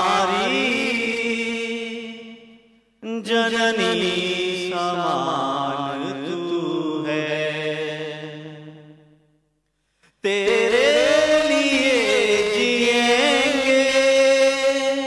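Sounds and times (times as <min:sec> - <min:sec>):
man chanting into a microphone: 0:00.0 - 0:02.4, 0:03.0 - 0:08.6, 0:10.2 - 0:15.0.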